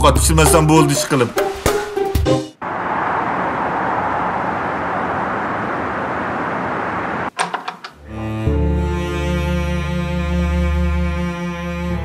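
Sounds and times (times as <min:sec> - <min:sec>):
distant city traffic hum: 0:00.0 - 0:08.0.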